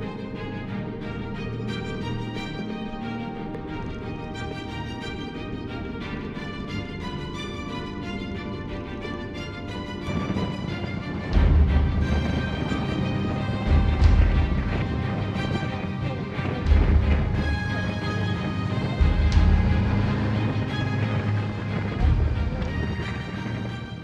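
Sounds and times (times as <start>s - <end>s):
music with heavy bass beat: 13.6s - 15.5s, 16.6s - 18.2s, 18.9s - 20.9s.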